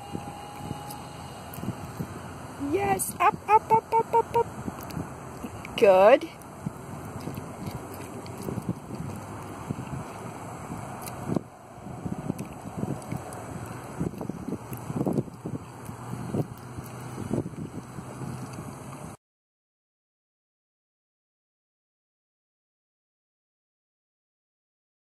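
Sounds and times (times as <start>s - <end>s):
wind buffeting microphone: 0.0s - 19.2s.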